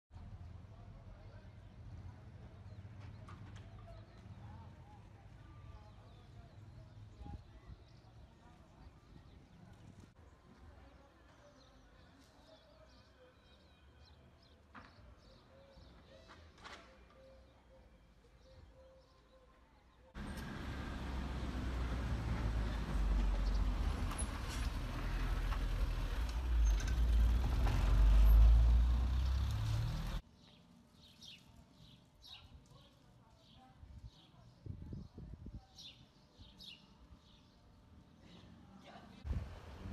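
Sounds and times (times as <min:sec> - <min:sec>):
loud low outdoor rumble: 0:20.2 - 0:30.2, 0:39.2 - 0:39.9.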